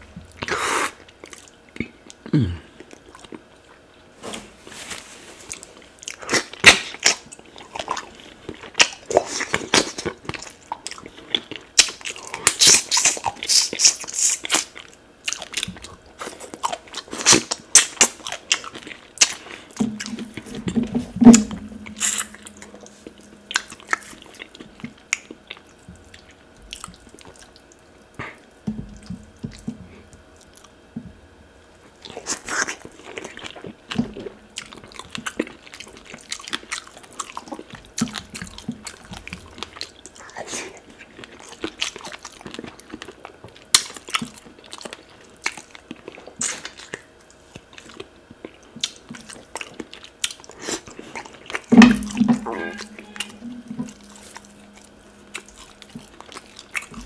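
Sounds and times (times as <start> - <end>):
wet chewing and lip smacking: 5.5 - 20.8, 21.8 - 30.8, 31.8 - 52.1, 52.7 - 57.0.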